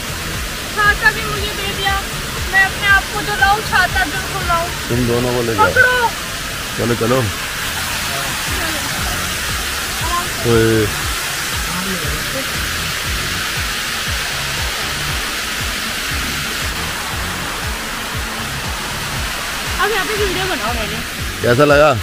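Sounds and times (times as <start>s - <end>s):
music with low beat: 0.0s - 22.0s
rainwater rushing down steps: 0.0s - 22.0s
person speaking: 0.8s - 6.2s, 10.0s - 12.7s.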